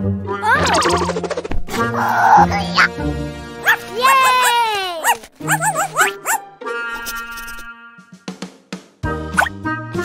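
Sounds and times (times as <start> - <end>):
bouncy background music: 0.0 - 10.0
cartoon puppy yipping: 3.6 - 7.6.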